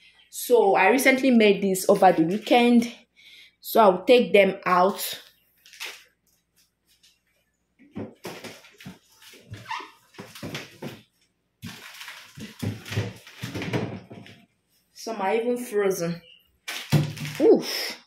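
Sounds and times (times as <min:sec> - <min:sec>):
plastic bags rustling: 0:08.2 - 0:14.3.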